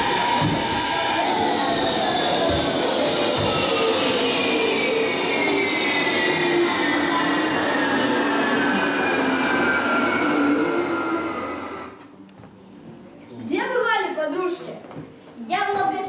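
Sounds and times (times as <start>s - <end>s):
rushing noise with sliding tones: 0.0s - 12.0s.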